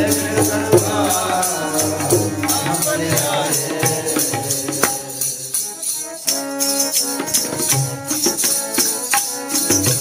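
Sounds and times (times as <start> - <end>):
harmonium chords: 0.0 - 10.0
tabla rhythm: 0.0 - 10.0.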